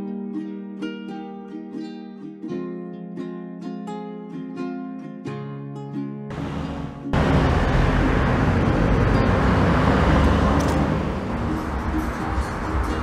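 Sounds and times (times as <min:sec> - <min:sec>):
faint guitar music: 0:00.0 - 0:09.3
outdoor rumble and hiss: 0:06.3 - 0:13.0.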